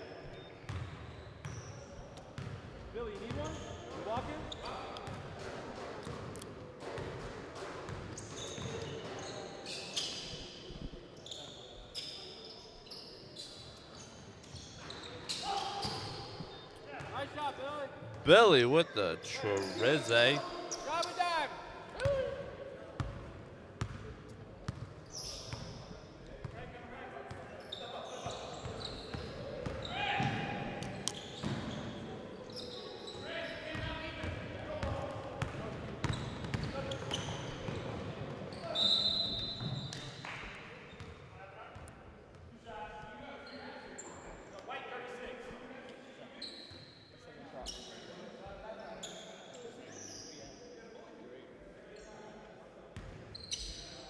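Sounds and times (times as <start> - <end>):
players' voices: 16.8 - 23.0.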